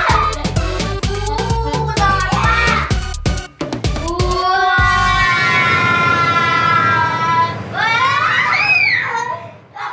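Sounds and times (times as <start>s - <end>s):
child singing high note: 4.0s - 5.6s.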